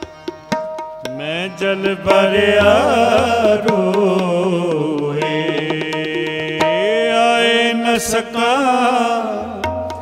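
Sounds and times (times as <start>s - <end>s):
tabla strokes: 0.0s - 8.0s, 9.4s - 10.0s
harmonium drone: 0.0s - 10.0s
man singing: 1.1s - 10.0s.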